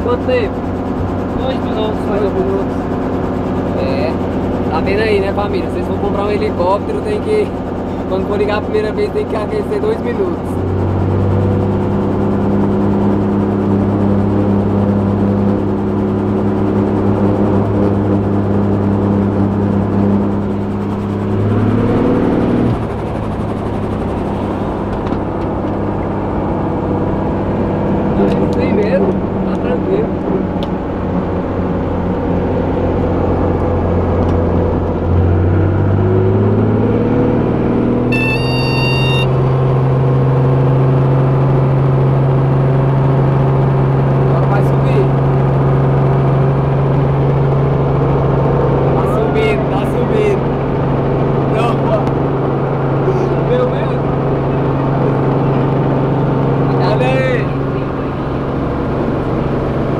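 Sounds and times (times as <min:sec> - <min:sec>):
helicopter engine and rotor humming: 0:00.0 - 0:59.9
short electronic beep: 0:38.0 - 0:39.5.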